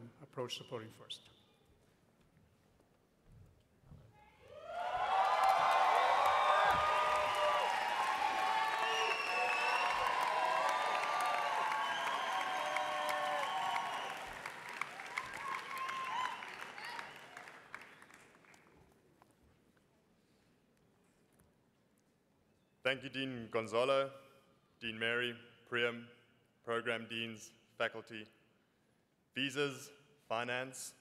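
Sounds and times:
shouts and whoops: 4.4s - 14.3s, 15.0s - 17.4s
audience applauding and cheering: 4.4s - 18.8s.

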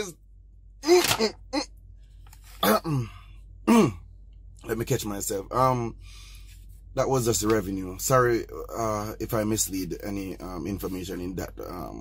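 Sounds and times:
man clearing his throat: 2.6s - 4.0s.

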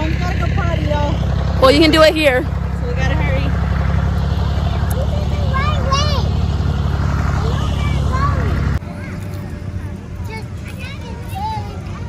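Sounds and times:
loud low rumble: 0.0s - 8.9s
faint voices: 4.3s - 12.0s.

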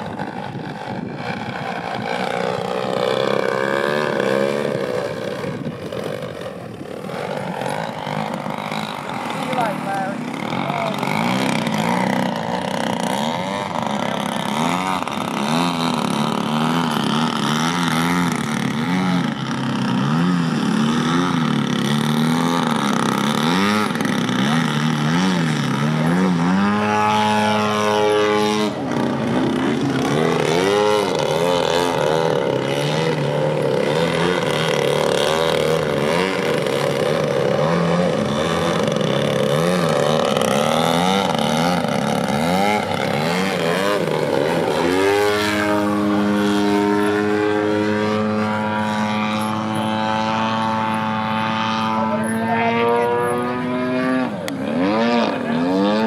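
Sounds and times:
model plane engine and propeller: 0.0s - 56.0s.

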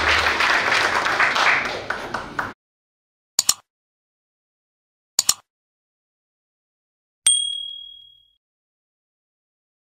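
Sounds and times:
click: 3.4s - 3.6s, 5.2s - 5.5s
bright bell chime: 7.3s - 8.4s.

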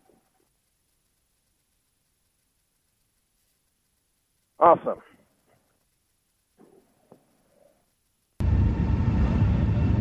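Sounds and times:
loud low rumbling outdoor noise: 8.4s - 10.0s.

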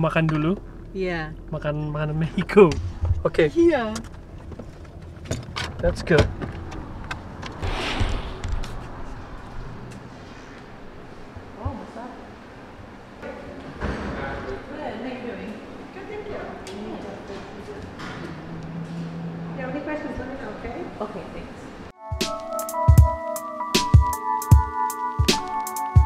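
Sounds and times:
indistinct voices: 13.2s - 21.9s.

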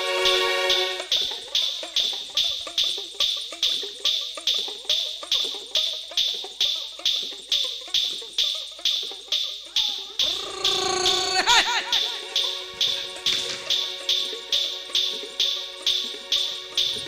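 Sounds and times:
sharp percussive strokes: 9.8s - 17.0s.

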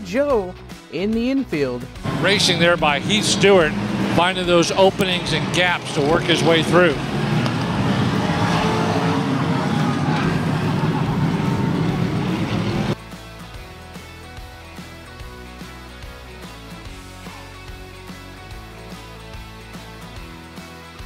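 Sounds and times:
background music: 0.0s - 21.0s
race car engines roaring: 2.0s - 13.0s.

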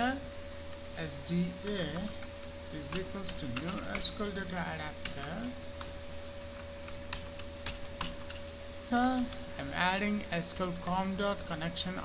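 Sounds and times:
faint steady hum: 0.0s - 12.0s
computer keyboard keystrokes: 2.9s - 4.1s, 6.8s - 8.4s.

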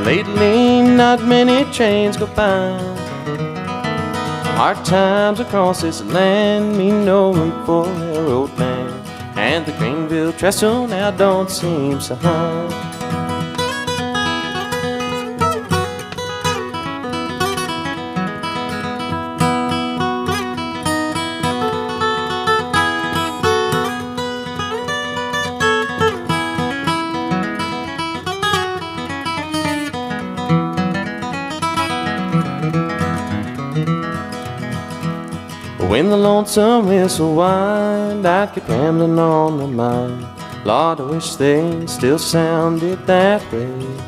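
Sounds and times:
acoustic guitar picking and strumming: 0.0s - 44.0s.

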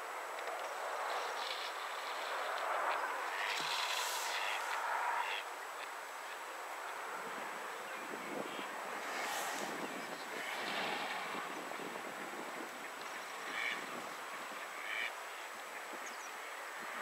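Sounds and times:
steady background noise: 0.0s - 17.0s
ducks calling: 2.1s - 6.5s, 13.1s - 15.9s.

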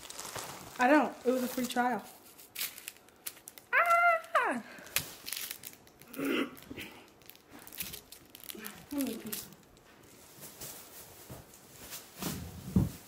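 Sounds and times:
package wrapping crinkling: 0.0s - 12.4s.

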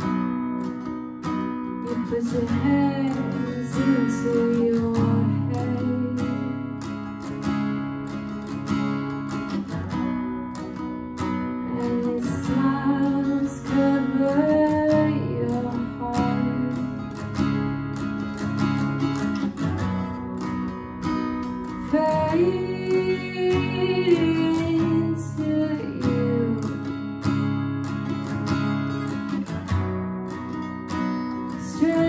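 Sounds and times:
acoustic guitar strummed: 0.0s - 32.0s
woman singing: 1.2s - 7.4s, 11.2s - 17.7s, 20.1s - 27.4s, 31.4s - 32.0s.

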